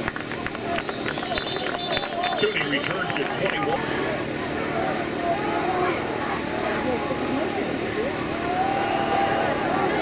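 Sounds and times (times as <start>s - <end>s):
spectators talking and calling out: 0.0s - 10.0s.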